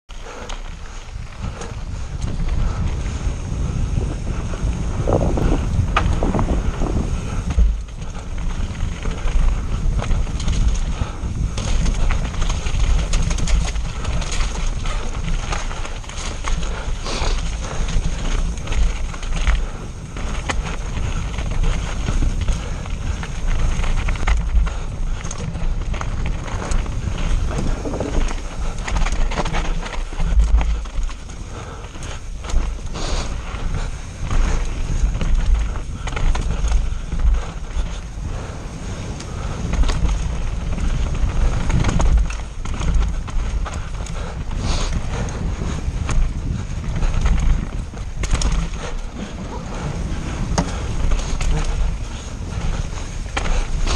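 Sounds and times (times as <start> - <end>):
bike rattling over rough ground: 0.1 - 53.9
heavy rumble: 0.1 - 53.9
wind rushing over microphone: 0.2 - 53.9.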